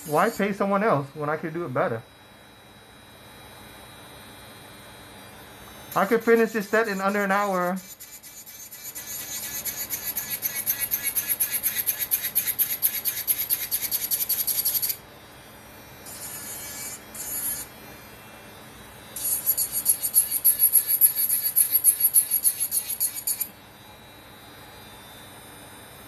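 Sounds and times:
electric nail drill sanding: 0.0 - 0.7, 5.9 - 15.0, 16.0 - 18.0, 19.1 - 23.6.

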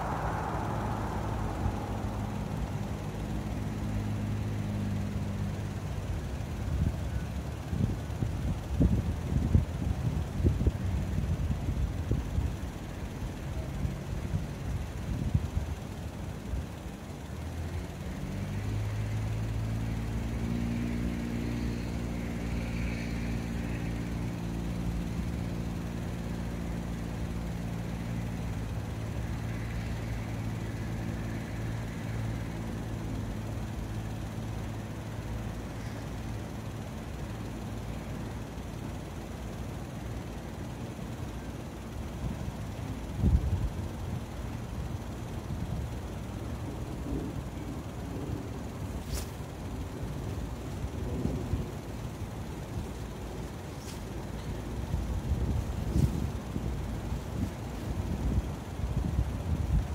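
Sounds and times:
vehicle engine idling: 0.0 - 59.9
wind noise on microphone: 7.7 - 12.6, 54.8 - 59.9.

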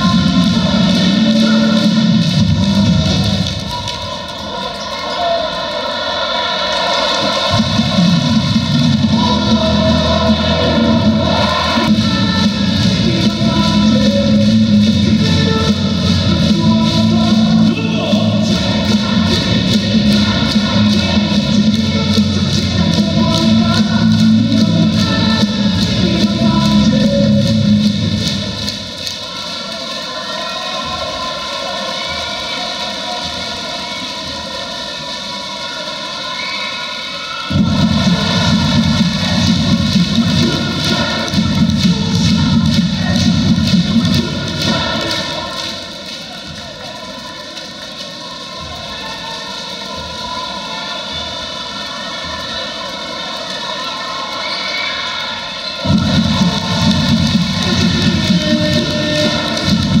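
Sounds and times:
arena crowd roar: 0.0 - 60.0.

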